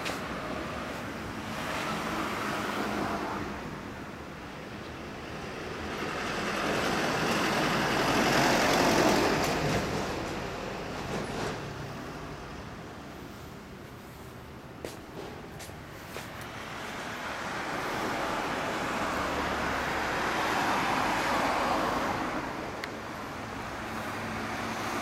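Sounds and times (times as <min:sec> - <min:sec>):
passing vehicles: 0:00.0 - 0:25.0.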